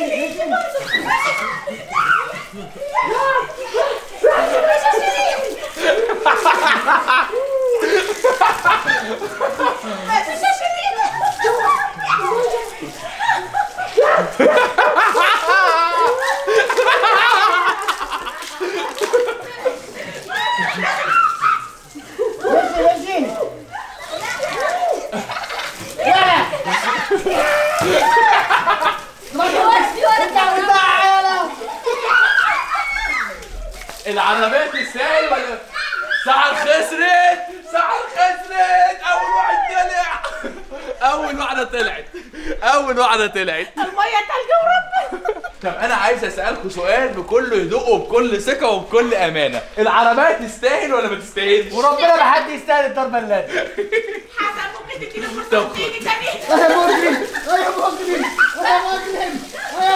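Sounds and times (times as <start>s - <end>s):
group talking and crying out: 0.0s - 59.9s
group of people yelling: 0.7s - 8.0s, 14.0s - 17.9s, 20.2s - 25.2s, 26.0s - 33.8s, 37.8s - 40.2s.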